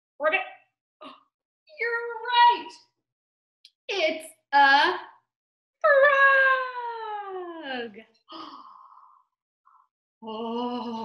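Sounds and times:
rasping vocal sound: 10.2 - 11.0.

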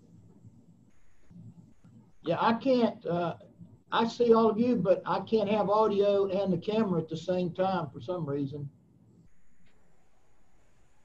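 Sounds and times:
audio line hiss: 0.0 - 11.0.

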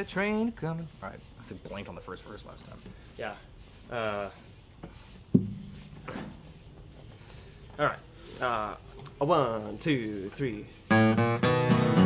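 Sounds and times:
knock on acoustic guitar: 5.3 - 6.4.

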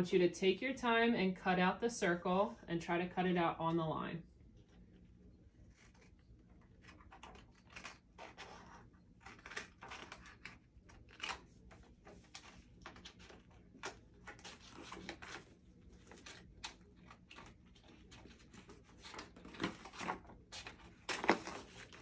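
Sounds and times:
paper rustling: 5.6 - 22.0
scissors snipping paper: 5.7 - 22.0.

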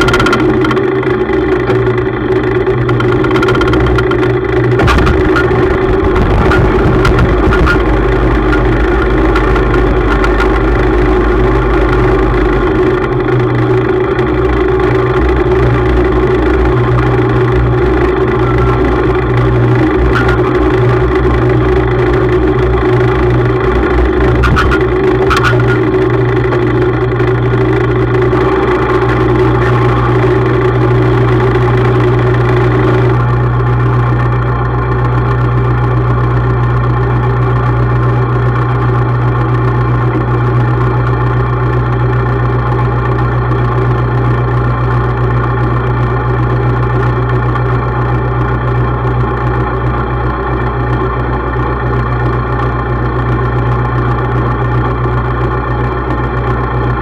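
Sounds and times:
tractor engine running: 0.0 - 57.0
clicks: 2.8 - 12.2, 18.0 - 21.4, 23.2 - 31.8.

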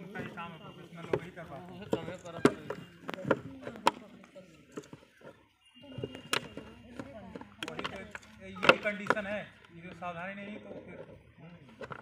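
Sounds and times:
plastic jug knocking and clicking: 1.0 - 10.0.

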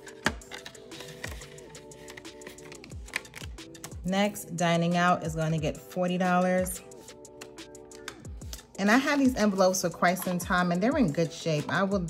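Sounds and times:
paper cash rustling: 0.0 - 3.6
soft background music: 0.0 - 12.0.

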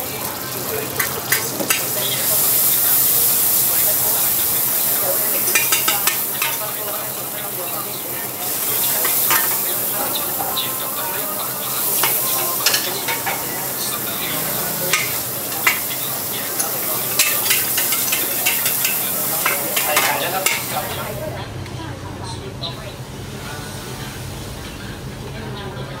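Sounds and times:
vegetables sizzling in a wok: 0.0 - 26.0
ladle scraping wok: 0.3 - 21.2
ladle clinking against wok: 5.4 - 6.7, 11.8 - 14.1, 14.9 - 20.8.

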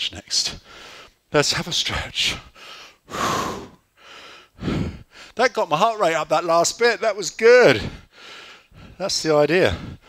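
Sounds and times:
man breathing hard: 0.6 - 1.2, 2.5 - 5.4, 7.8 - 9.0, 9.6 - 10.0.

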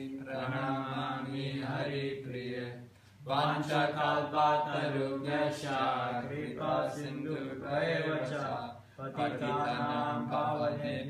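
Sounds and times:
man chanting prayers: 0.0 - 11.0.

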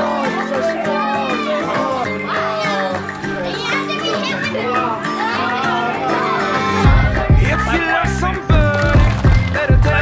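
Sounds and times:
children shouting and laughing: 0.0 - 8.8
background music: 0.0 - 10.0.

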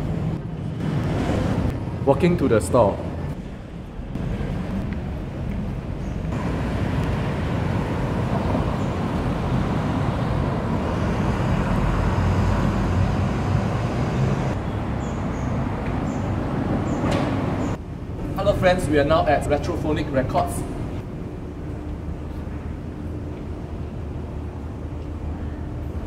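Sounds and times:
passing road traffic: 0.0 - 25.8.

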